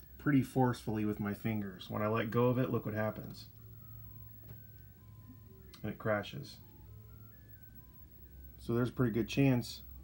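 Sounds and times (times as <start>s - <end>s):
low hum: 0.0s - 8.9s.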